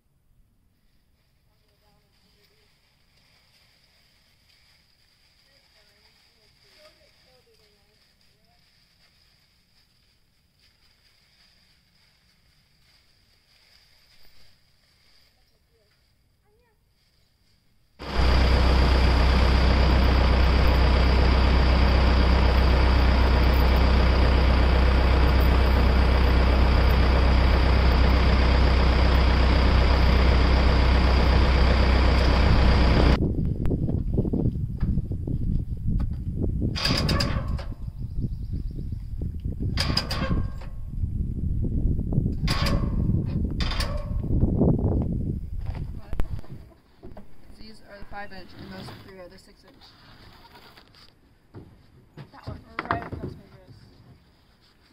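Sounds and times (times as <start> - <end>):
tractor engine running: 18.0 - 35.3, 36.0 - 38.0, 39.5 - 41.0, 42.2 - 46.4
short sharp machine sounds: 36.8 - 37.6.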